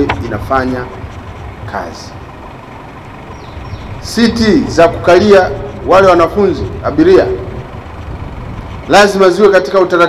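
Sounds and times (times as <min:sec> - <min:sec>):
vehicle engines idling: 0:00.0 - 0:10.0.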